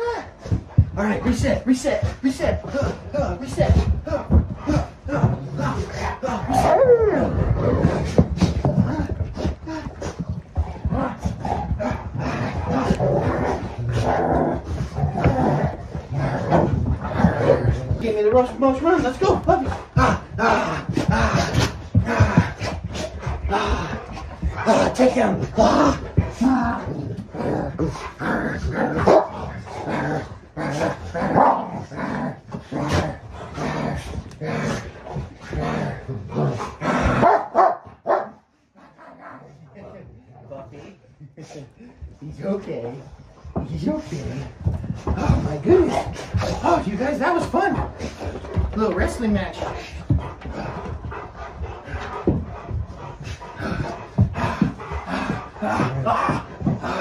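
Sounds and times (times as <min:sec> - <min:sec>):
paws scuffling and bodies bumping: 0:00.0 - 0:40.2, 0:41.8 - 0:57.0
dogs play-growling and barking: 0:00.0 - 0:57.0
dogs barking and crying: 0:05.8 - 0:18.5, 0:27.6 - 0:29.7, 0:30.3 - 0:31.9, 0:37.0 - 0:39.5.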